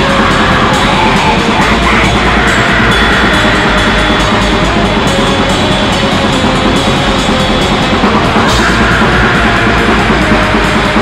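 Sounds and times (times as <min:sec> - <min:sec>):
distorted guitars: 0:00.0 - 0:11.0
drums: 0:00.0 - 0:11.0.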